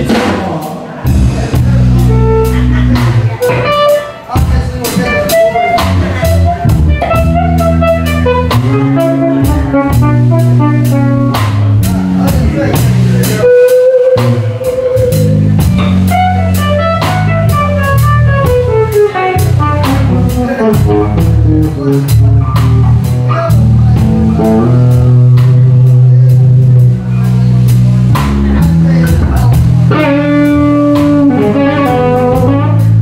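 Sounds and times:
blues rock band playing: 0:00.0 - 0:33.0
lead electric guitar: 0:01.0 - 0:33.0.

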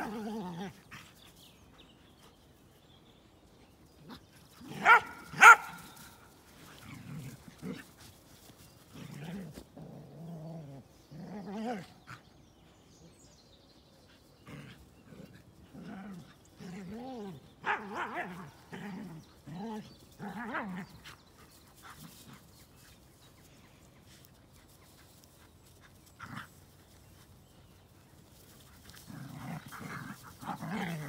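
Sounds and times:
dogs growling: 0:00.0 - 0:01.7, 0:03.9 - 0:12.5, 0:14.1 - 0:23.2, 0:24.0 - 0:31.0
dog barking: 0:04.8 - 0:05.8, 0:17.6 - 0:18.3.

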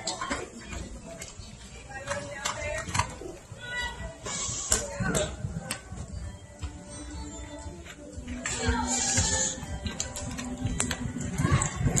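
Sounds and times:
indistinct background voices: 0:00.0 - 0:12.0.

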